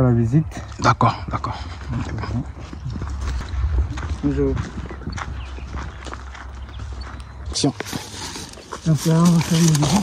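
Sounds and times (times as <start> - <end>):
footsteps on dry dirt: 0.0 - 10.0
wind rumble on microphone: 0.4 - 7.6.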